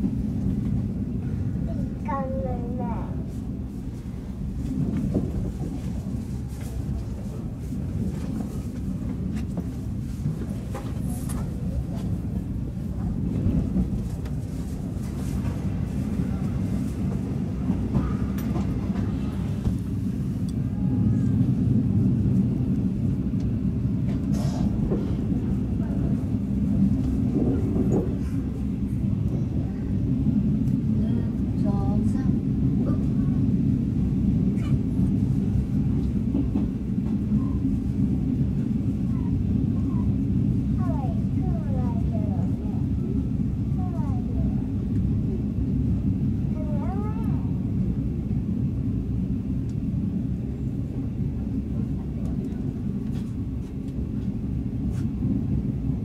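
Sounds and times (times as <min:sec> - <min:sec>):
train carriage rumbling on rails: 0:00.0 - 0:56.0.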